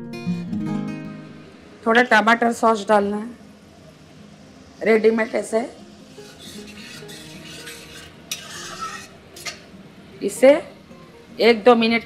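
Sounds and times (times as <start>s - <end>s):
metal spoon scraping a pan: 5.1s - 9.7s.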